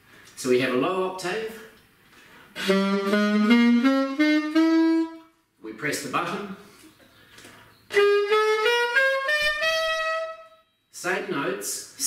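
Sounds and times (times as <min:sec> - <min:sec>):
alto saxophone ascending run: 0:02.6 - 0:05.4, 0:07.9 - 0:10.6.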